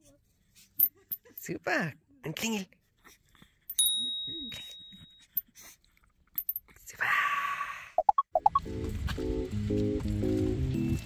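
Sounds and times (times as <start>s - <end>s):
small bell ringing: 3.7s - 5.4s.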